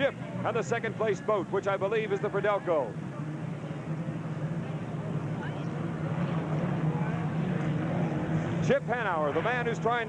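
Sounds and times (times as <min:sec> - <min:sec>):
racing boat engines droning: 0:00.0 - 0:10.0.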